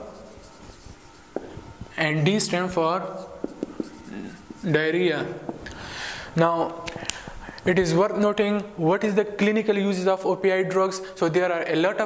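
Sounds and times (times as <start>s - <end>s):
marker scratching on whiteboard: 0.0s - 5.6s.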